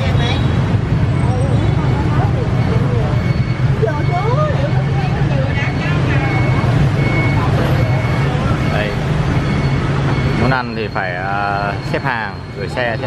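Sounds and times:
people talking: 0:00.0 - 0:09.0, 0:10.4 - 0:13.0
traffic engine rumble: 0:00.0 - 0:13.0.

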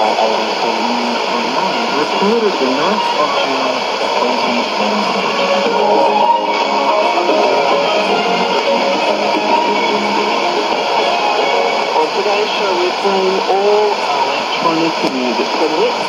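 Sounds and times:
guitar music over radio speaker: 0:00.0 - 0:16.0
radio band noise: 0:00.0 - 0:16.0.

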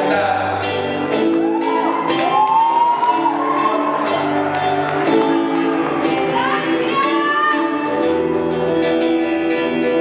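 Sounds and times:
acoustic guitar strumming: 0:00.0 - 0:10.0.

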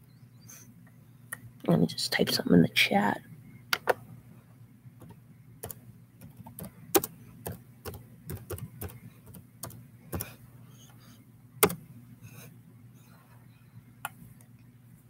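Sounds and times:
keyboard typing clicks: 0:05.0 - 0:10.3.

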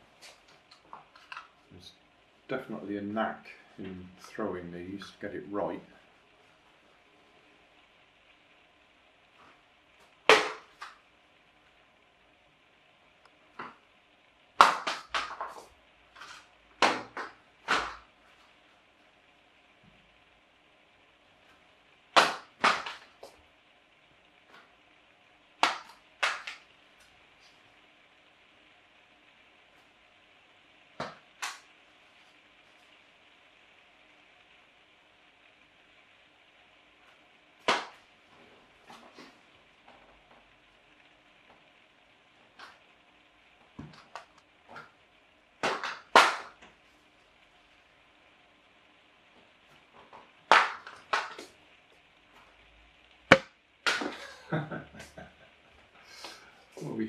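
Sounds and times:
paper gliders striking hard surfaces: 0:14.6 - 0:15.6, 0:22.1 - 0:23.1, 0:45.6 - 0:46.6.

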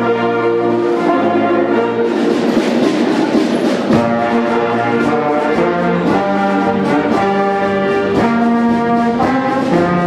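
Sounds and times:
brass and woodwind chords: 0:00.0 - 0:10.0
rapid drum roll: 0:00.8 - 0:10.0.

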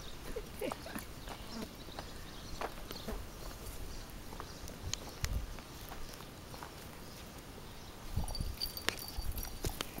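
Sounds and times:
footsteps on dirt and gravel: 0:00.6 - 0:07.3.

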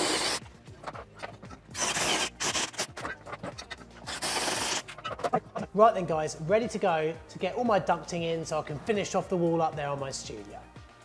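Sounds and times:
cordless drill cutting plastic pipe: 0:00.0 - 0:00.4, 0:01.2 - 0:05.4.

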